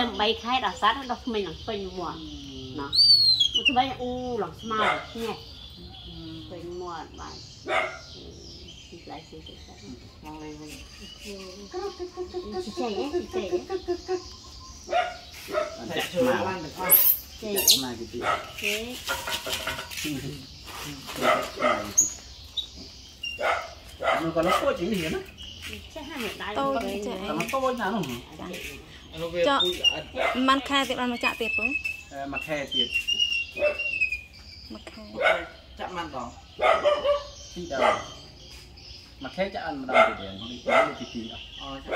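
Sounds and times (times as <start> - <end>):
dog barking: 4.7 - 5.4, 7.6 - 8.1, 14.9 - 15.9, 18.2 - 18.6, 21.2 - 22.0, 23.4 - 24.8, 30.2 - 30.5, 33.6 - 33.9, 35.2 - 35.6, 36.6 - 38.2, 39.9 - 41.2
dog barking and whining: 33.5 - 34.0.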